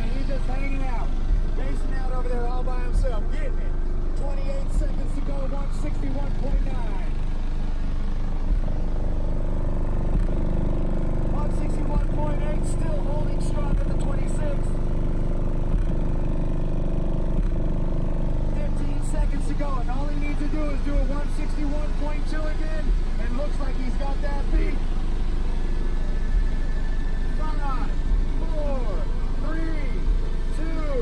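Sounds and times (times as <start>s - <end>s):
bass thumps: 0.0s - 31.0s
subwoofers playing loud bass: 0.0s - 31.0s.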